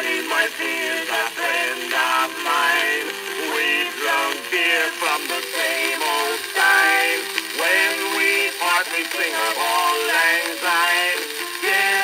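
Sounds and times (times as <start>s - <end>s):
men singing on old record: 0.0s - 12.0s
record surface hiss: 0.0s - 12.0s.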